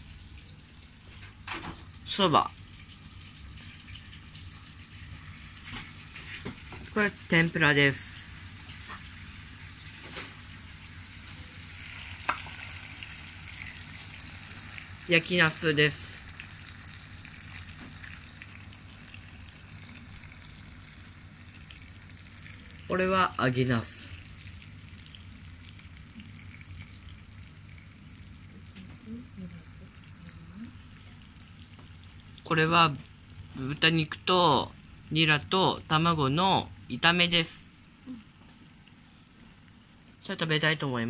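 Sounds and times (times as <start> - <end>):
stir-fry sizzling in a pan: 3.0 - 33.6.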